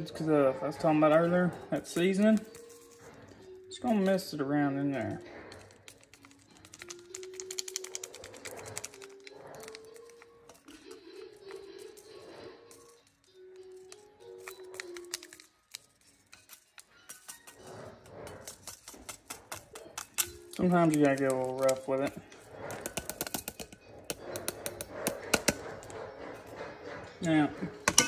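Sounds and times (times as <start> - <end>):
foil packet crinkling: 1.7 - 4.3, 5.4 - 23.8.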